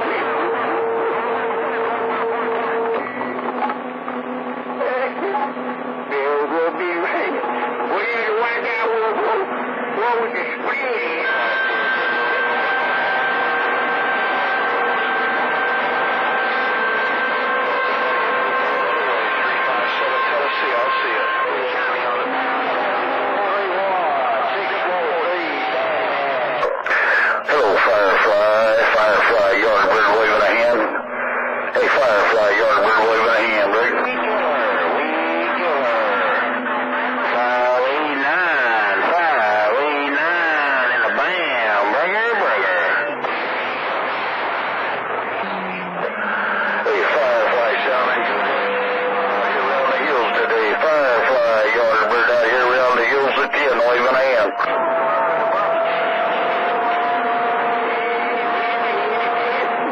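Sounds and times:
garbled radio voices: 0.0 - 59.9
steady radio tones: 0.0 - 59.9.

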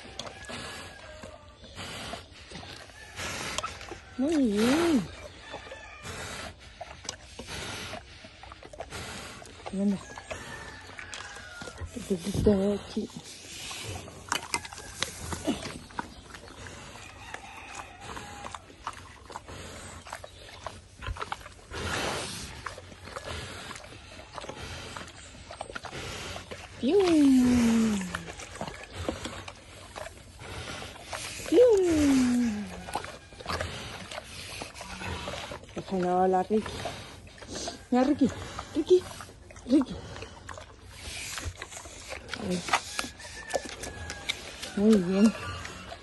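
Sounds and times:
pig rooting in straw: 0.0 - 46.0.

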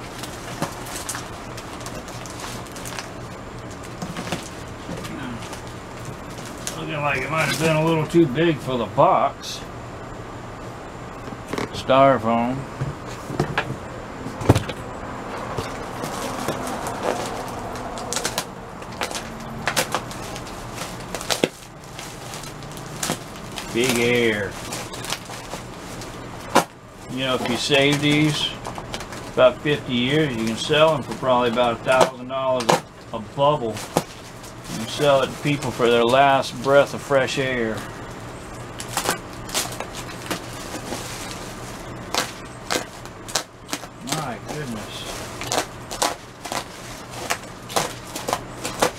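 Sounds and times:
plastic bag crinkling: 0.0 - 8.0, 15.4 - 32.8, 38.1 - 48.9.

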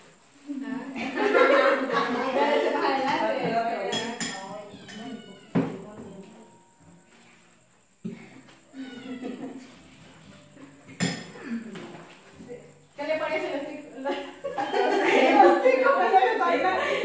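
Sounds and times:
plates and utensils clinking: 3.0 - 6.1, 9.9 - 12.1.

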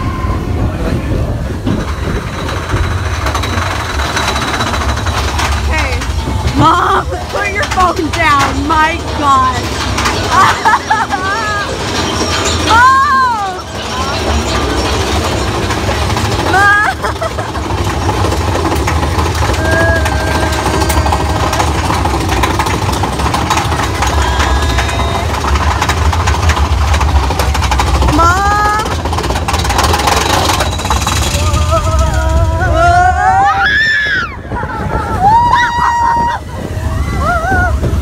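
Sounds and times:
roller coaster rumbling on track: 0.0 - 38.0
riders shrieking: 19.3 - 25.9, 31.4 - 37.9.

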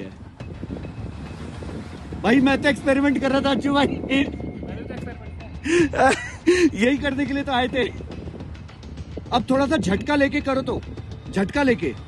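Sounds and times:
man laughing: 5.6 - 7.0.

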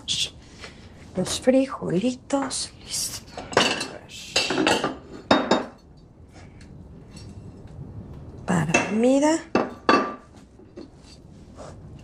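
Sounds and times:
plates clattering on countertop: 3.4 - 5.8, 9.6 - 10.9.

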